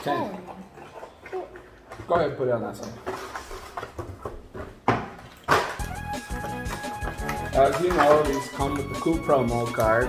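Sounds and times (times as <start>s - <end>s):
music: 5.8s - 10.0s.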